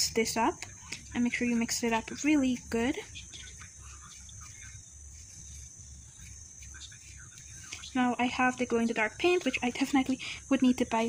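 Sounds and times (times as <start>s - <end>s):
low steady hum: 0.0s - 11.0s
paintbrush scratching in container: 1.8s - 8.0s.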